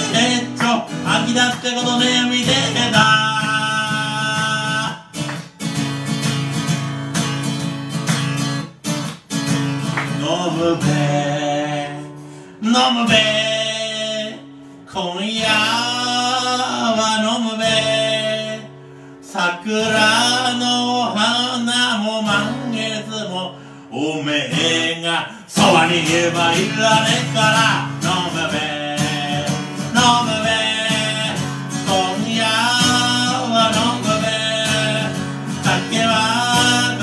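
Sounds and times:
man singing into a microphone: 0:00.0 - 0:05.2, 0:10.1 - 0:37.0
acoustic guitar strumming: 0:00.0 - 0:37.0.

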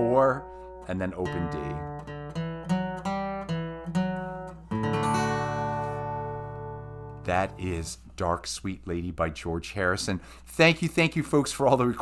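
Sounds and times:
acoustic guitar picking single notes: 0:00.0 - 0:08.0
guitar chord ringing out: 0:00.5 - 0:07.8.

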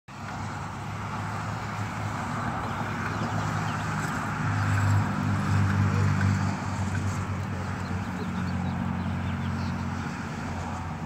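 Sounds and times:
road traffic hum: 0:00.1 - 0:11.0.

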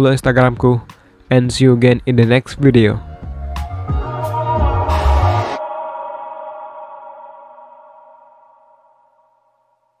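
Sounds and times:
sustained synth chord: 0:03.1 - 0:09.7.

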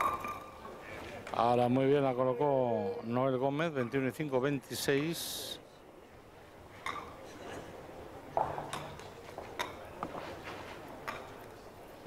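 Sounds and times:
faint indoor hall background: 0:00.0 - 0:12.0.

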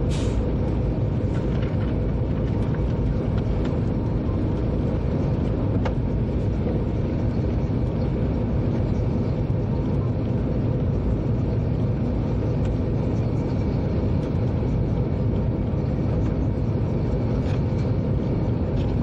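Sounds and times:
train rumbling along track: 0:00.0 - 0:19.0.

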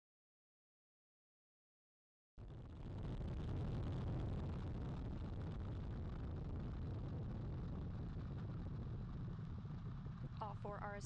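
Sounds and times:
rocket engines rumbling: 0:02.4 - 0:11.0.

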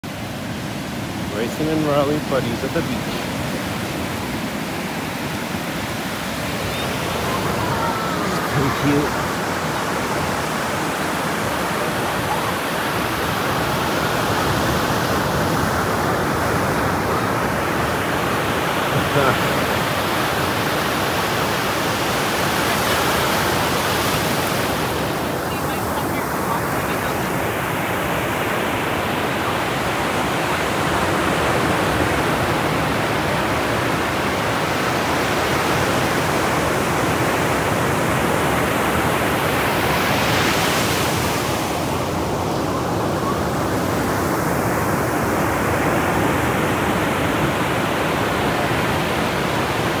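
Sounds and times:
ocean surf breaking: 0:00.0 - 0:50.0.

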